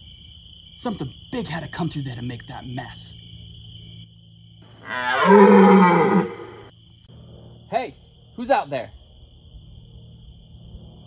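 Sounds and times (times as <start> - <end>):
crickets chirring: 0.0 - 11.0
low creature roar: 4.8 - 6.7.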